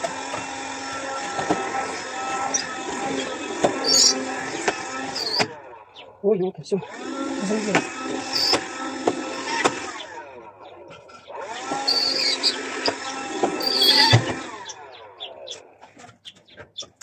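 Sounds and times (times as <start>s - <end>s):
window vacuum motor whine: 0.0s - 6.1s, 6.8s - 15.8s.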